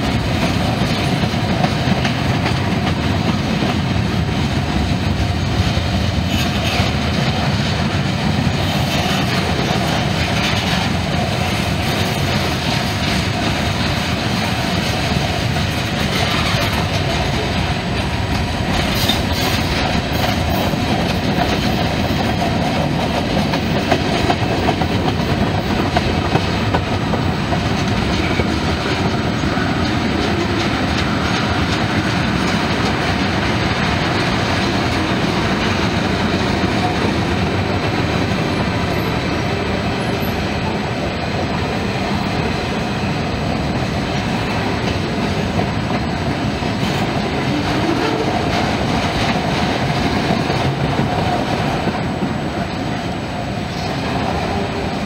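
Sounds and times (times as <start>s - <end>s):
freight cars rolling on rails: 0.0s - 55.0s.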